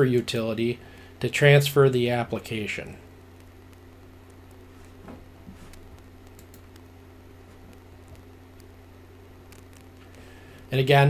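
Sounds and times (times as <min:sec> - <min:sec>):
low electrical hum: 0:00.0 - 0:11.0
computer input clicks and taps: 0:06.3 - 0:06.8.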